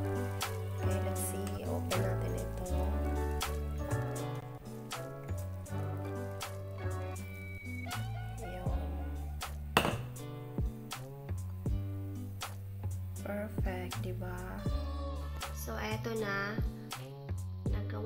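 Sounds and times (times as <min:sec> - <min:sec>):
music with bass and beat: 0:00.0 - 0:17.9.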